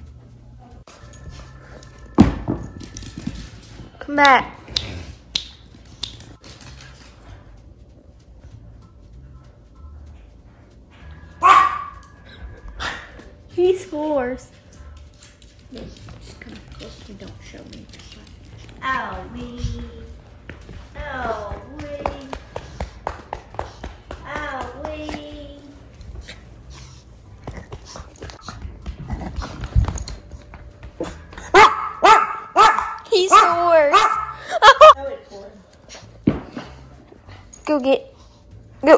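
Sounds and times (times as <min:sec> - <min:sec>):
small dog barking: 0:11.4 - 0:12.0, 0:31.5 - 0:34.4.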